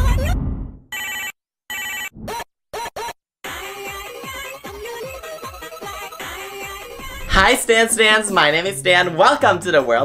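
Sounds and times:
telephone ringing: 1.0s - 2.1s
deep boom: 6.8s - 8.2s.

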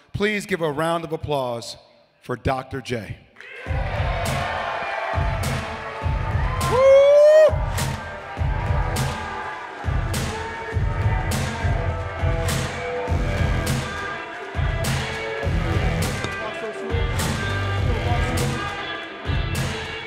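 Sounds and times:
crowd cheering: 3.4s - 15.2s
music with heavy bass beat: 3.7s - 20.0s.

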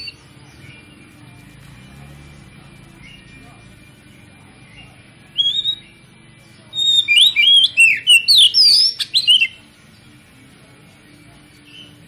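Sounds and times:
bird singing: 0.0s - 10.2s, 11.5s - 12.0s.

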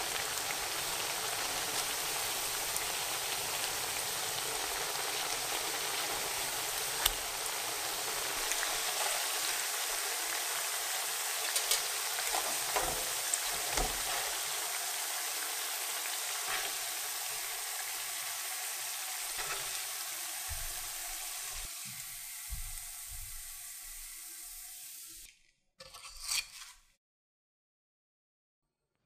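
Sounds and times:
patties sizzling in hot oil: 0.0s - 25.3s.

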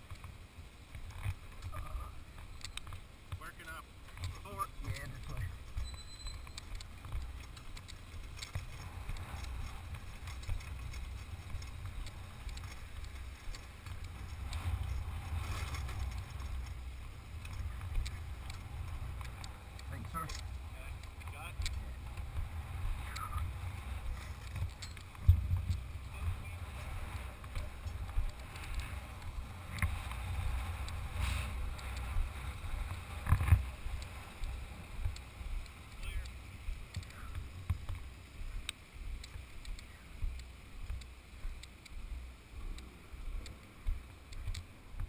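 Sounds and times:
faint sharp clicks: 0.9s - 3.4s, 24.4s - 45.0s
wind buffeting microphone: 6.6s - 45.0s
faint voices: 25.9s - 29.7s.

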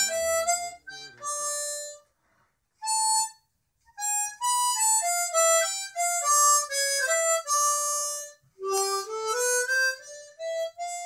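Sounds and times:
harmonica playing: 0.0s - 11.0s.

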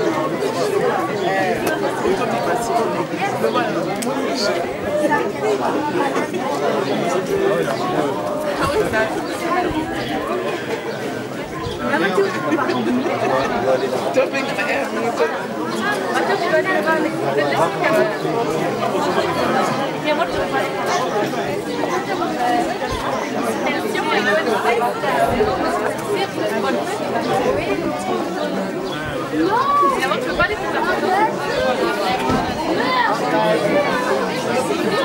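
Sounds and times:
crowd babble: 0.0s - 35.0s.

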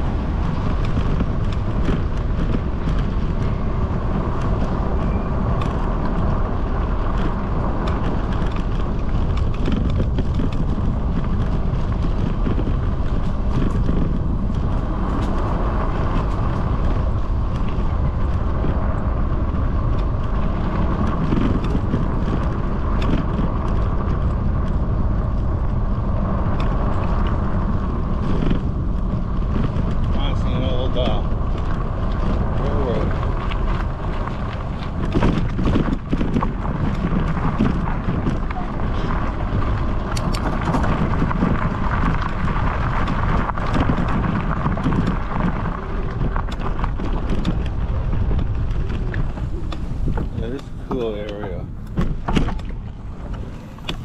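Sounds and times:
bike bumping over tracks: 0.0s - 54.0s
tyres rolling over gravel: 0.0s - 54.0s
wind rumble on microphone: 0.0s - 54.0s.

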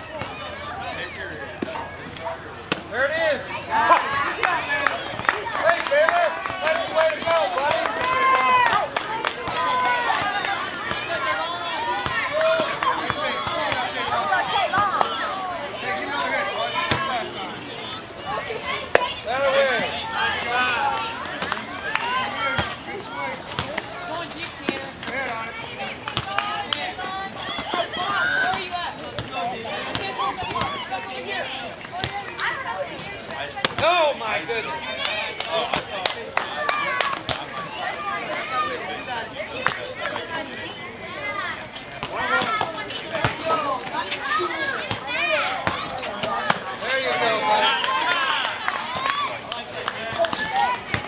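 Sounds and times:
spectators calling out and talking: 0.0s - 51.0s.

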